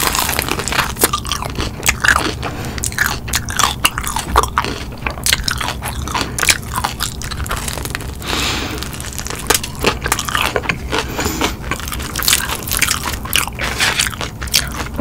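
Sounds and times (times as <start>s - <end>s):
chewing crispy chicken crunches: 0.0s - 15.0s.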